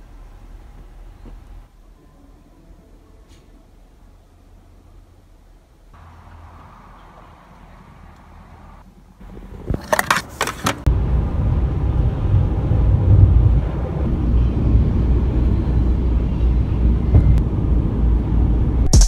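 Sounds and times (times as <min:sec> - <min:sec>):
van road and engine rumble: 0:03.8 - 0:19.0.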